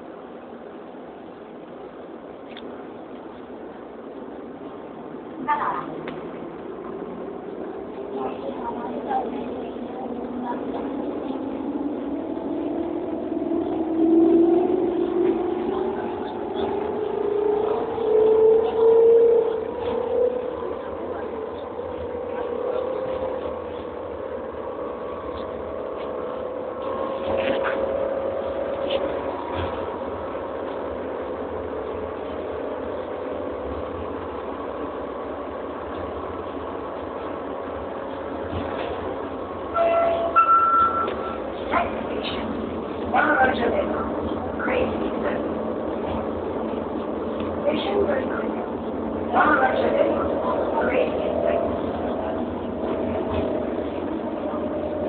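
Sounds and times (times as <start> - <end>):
vehicle cabin rumble: 0.0 - 39.7, 40.7 - 55.0.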